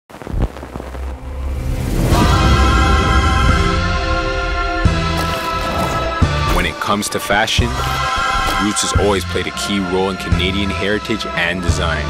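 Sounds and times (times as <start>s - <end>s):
low rumble: 0.1s - 7.0s.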